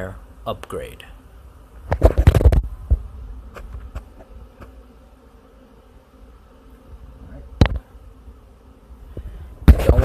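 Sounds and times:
low buzzing hum: 0.0s - 10.0s.

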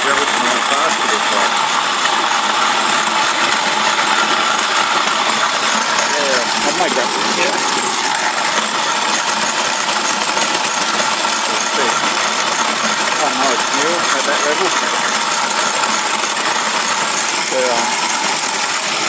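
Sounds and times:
grain mill grinding: 0.0s - 19.0s.

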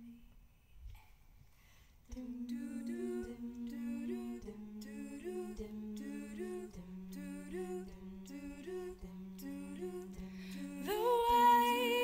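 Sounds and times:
women humming harmony: 2.1s - 12.0s.

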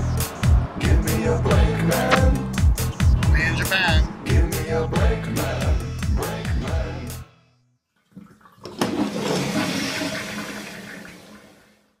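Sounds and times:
toilet flush click: 8.1s - 11.8s.

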